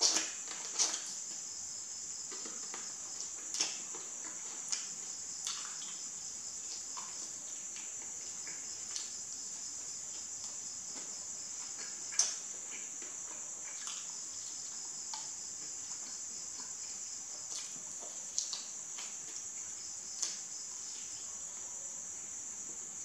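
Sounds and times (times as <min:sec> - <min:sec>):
crickets chirring: 0:00.0 - 0:23.0
biting and chewing chicken: 0:02.1 - 0:21.2.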